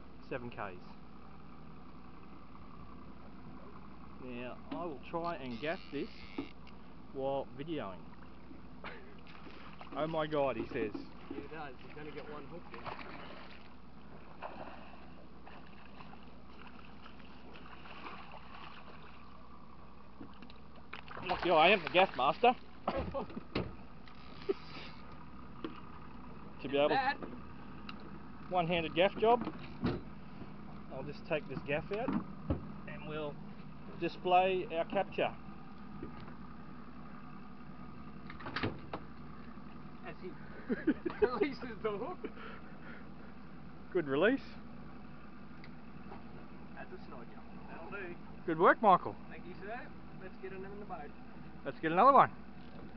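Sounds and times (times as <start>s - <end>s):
boat motor humming: 0.0s - 52.9s
man speaking: 4.2s - 6.3s
water wash: 21.0s - 22.6s
sharp knocks and clicks: 31.5s - 32.7s.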